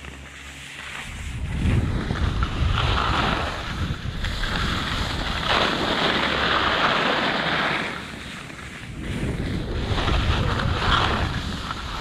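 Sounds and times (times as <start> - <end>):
skis scraping over packed snow: 0.0 - 12.0
wind buffeting microphone: 1.1 - 6.6, 8.8 - 12.0.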